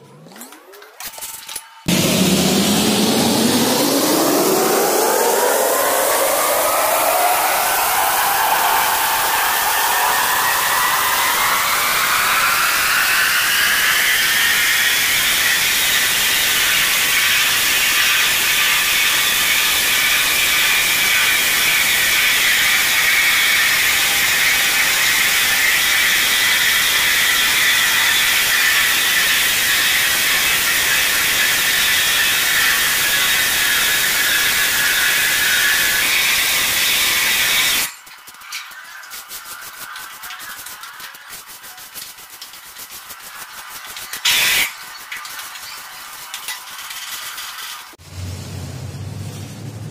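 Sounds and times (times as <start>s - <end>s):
floor polishing machine motor whine: 1.8s - 37.9s.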